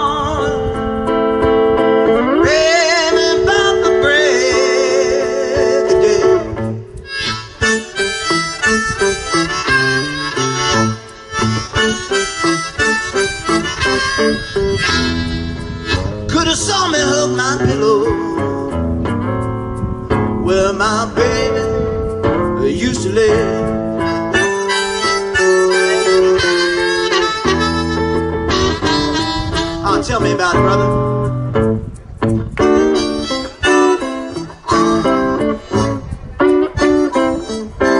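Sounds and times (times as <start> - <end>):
blues harmonica: 0.0 - 37.9
electric guitar: 0.0 - 37.9.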